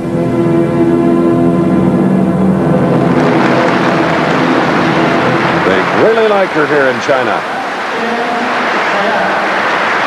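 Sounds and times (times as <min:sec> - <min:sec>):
orchestral music: 0:00.0 - 0:07.9
audience applauding: 0:03.3 - 0:10.0.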